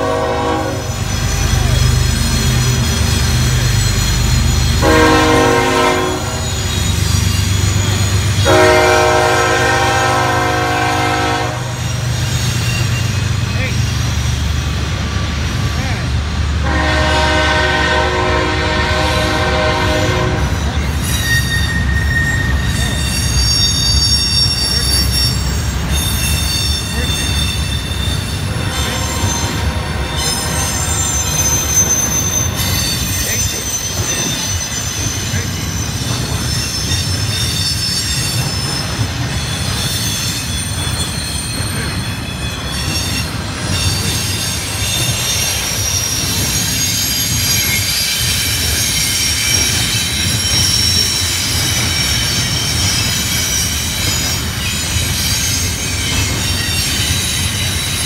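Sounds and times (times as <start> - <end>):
wheels squealing: 0.0 - 9.2, 11.7 - 16.0, 20.4 - 58.0
freight train rumbling on rails: 0.0 - 58.0.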